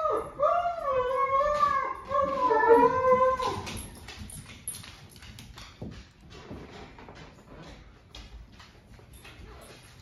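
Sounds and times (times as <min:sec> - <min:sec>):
dog whining: 0:00.0 - 0:03.9
faint footsteps on floor: 0:01.3 - 0:10.0.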